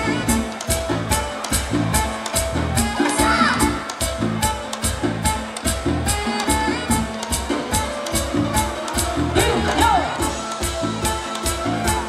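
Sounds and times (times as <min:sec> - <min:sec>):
live dance band through pa: 0:00.0 - 0:12.0
pulsing bass line: 0:00.0 - 0:12.0
steady drum beat: 0:00.0 - 0:12.0.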